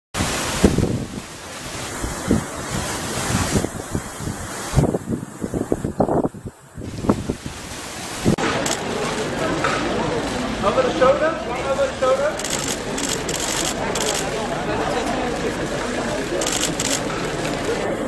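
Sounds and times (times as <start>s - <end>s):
wind buffeting microphone: 0.2s - 8.4s.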